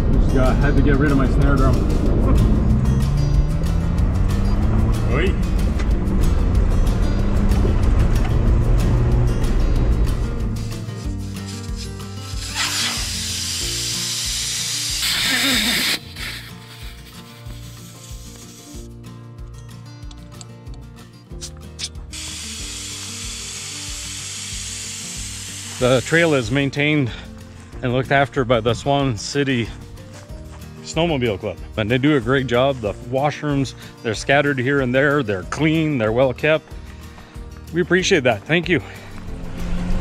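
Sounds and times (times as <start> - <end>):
background music with steady beat: 0.0 - 40.0
air hissing from tyre valve: 11.0 - 18.9, 21.8 - 26.6
vehicle rumbling on gravel: 39.1 - 40.0.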